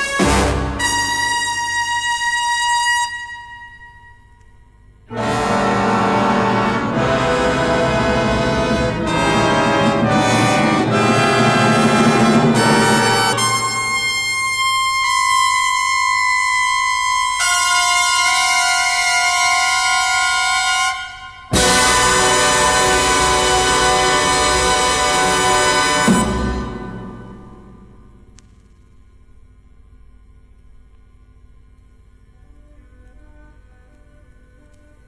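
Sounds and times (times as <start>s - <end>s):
wind instruments holding chords: 0.0s - 4.4s, 5.1s - 28.3s
brass sustained high note: 0.0s - 28.3s.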